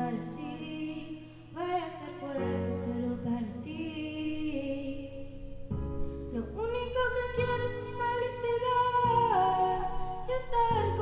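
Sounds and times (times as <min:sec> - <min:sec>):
girl singing a ballad: 0:00.0 - 0:11.0.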